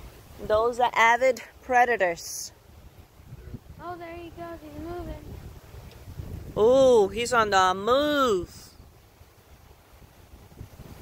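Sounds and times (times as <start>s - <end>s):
wind buffeting microphone: 2.6s - 11.0s.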